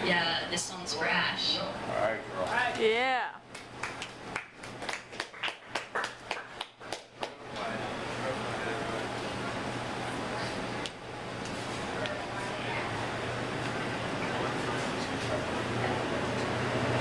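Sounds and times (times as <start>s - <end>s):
murmur of room chatter: 0.0s - 17.0s
audience clapping: 3.5s - 7.7s.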